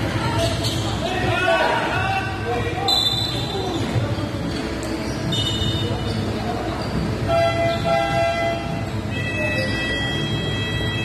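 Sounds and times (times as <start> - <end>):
players' voices echoing: 0.0 - 8.2
high-pitched shoe squeal: 5.1 - 7.0.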